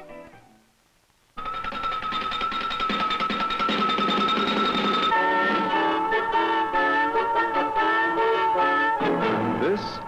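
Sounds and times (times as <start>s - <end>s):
station identification theme music: 3.6s - 9.8s.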